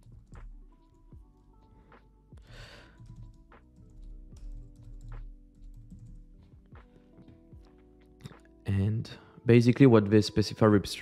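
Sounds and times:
keyboard keys clicking: 0:02.9 - 0:08.4.

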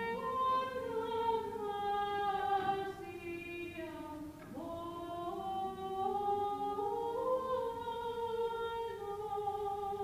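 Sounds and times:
unaccompanied church chant: 0:00.0 - 0:10.0.

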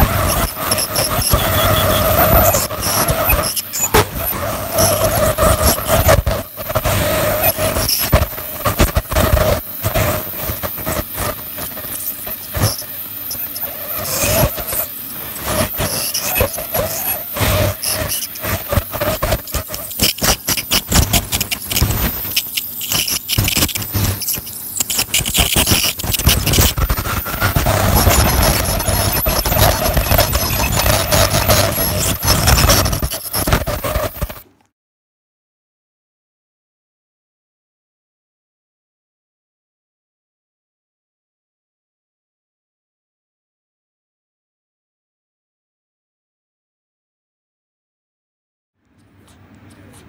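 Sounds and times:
ultrasonic dental scaler: 0:00.0 - 0:34.4.

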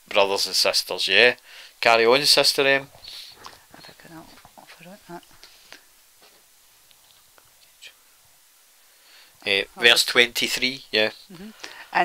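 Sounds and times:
faint whispers: 0:02.6 - 0:05.9.

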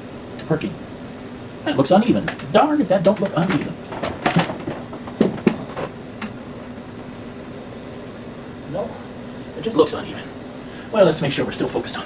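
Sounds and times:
refrigerator humming: 0:00.0 - 0:12.0
sharp knocks: 0:03.2 - 0:06.4.

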